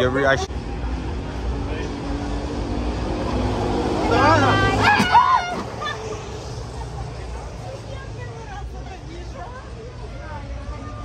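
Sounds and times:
vehicle passing: 0.0s - 10.7s
woman crying out and laughing: 4.1s - 6.4s.

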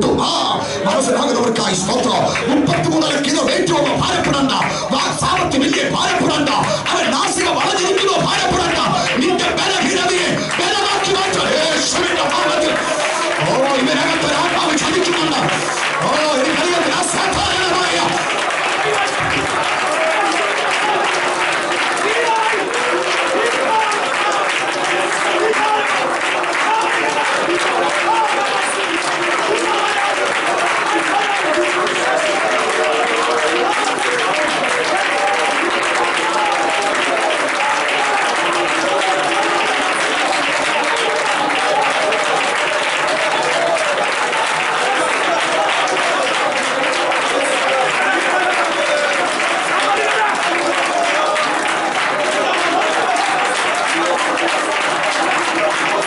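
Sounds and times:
many voices praying aloud: 0.0s - 56.0s
people clapping steadily: 0.0s - 56.0s.

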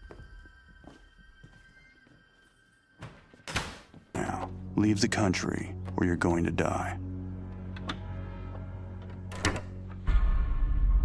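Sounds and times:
suspense music drone: 4.2s - 11.0s.

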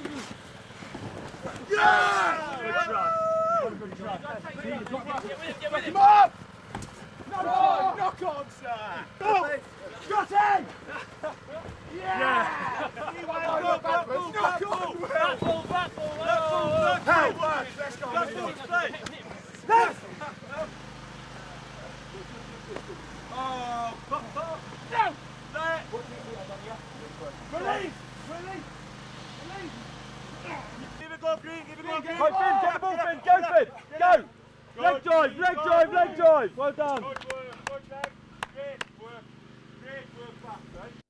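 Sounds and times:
low mechanical hum: 0.0s - 41.0s
players shouting: 1.4s - 37.1s
hand clapping: 36.9s - 39.0s.

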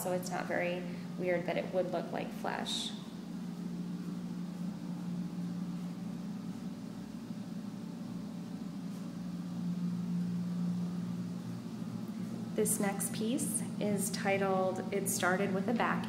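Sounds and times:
low mechanical hum: 0.0s - 16.0s.

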